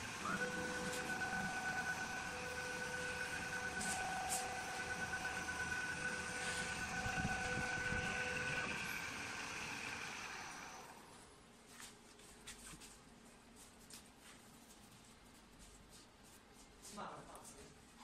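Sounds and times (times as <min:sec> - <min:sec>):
lathe turning wooden spindle: 0:00.0 - 0:11.0
high motor whine: 0:00.0 - 0:11.1.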